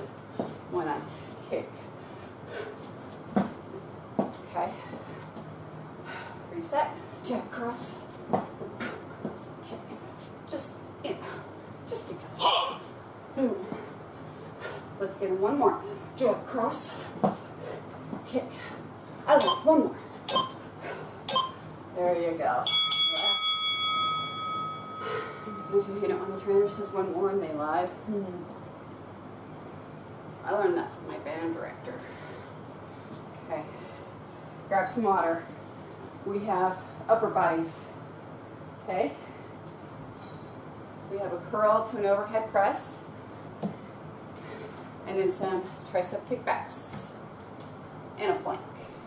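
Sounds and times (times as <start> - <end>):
timer bell ringing: 22.6 - 27.4.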